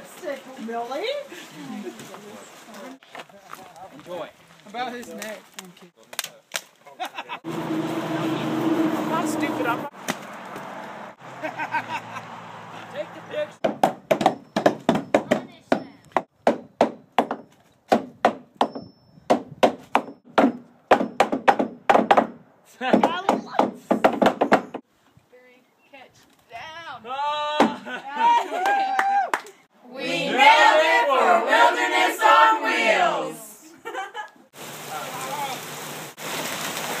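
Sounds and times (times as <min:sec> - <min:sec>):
hammers driving nails into wood: 0:13.6 - 0:24.8
rain hissing: 0:34.5 - 0:37.0.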